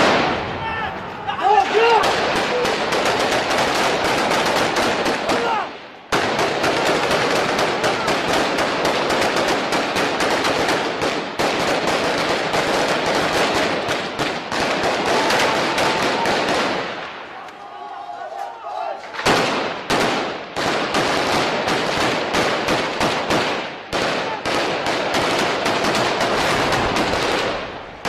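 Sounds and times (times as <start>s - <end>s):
automatic rifle gunfire: 2.0s - 17.0s, 19.2s - 28.0s.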